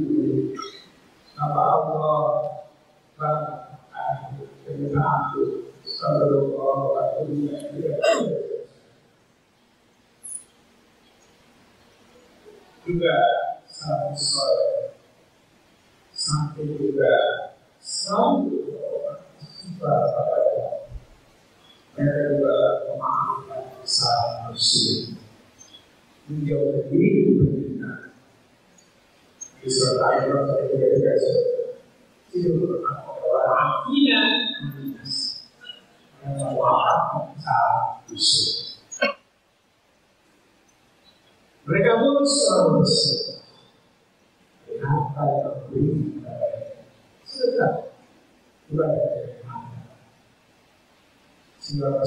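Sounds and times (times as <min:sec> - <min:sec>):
man's voice through microphone: 0:00.0 - 0:08.9, 0:12.4 - 0:15.1, 0:16.1 - 0:28.2, 0:29.4 - 0:39.1, 0:41.6 - 0:43.7, 0:44.6 - 0:48.1, 0:48.7 - 0:50.0, 0:51.6 - 0:52.0.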